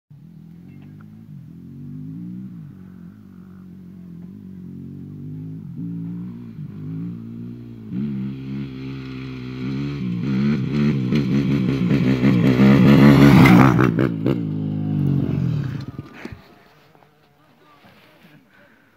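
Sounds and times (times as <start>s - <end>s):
motocross bike engine revving: 0.2s - 17.2s.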